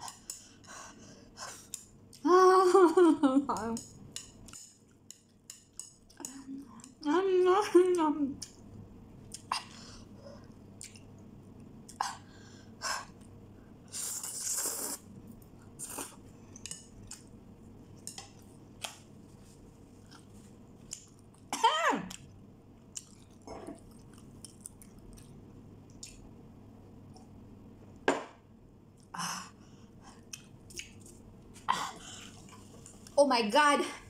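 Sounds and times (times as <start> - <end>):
person slurping noodles: 13.9 - 15.0
wet mouth clicks and smacks: 25.9 - 26.3.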